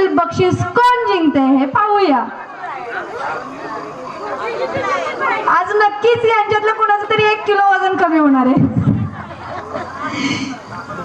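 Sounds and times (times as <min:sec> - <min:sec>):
woman speaking into a microphone: 0:00.0 - 0:02.4, 0:04.7 - 0:09.2
people talking over one another: 0:00.0 - 0:11.0.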